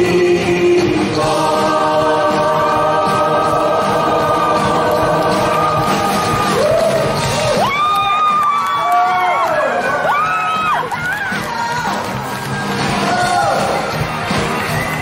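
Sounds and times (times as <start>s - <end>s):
male and female voices singing: 0.0s - 7.3s
band accompaniment: 0.0s - 15.0s
audience cheering: 4.1s - 15.0s.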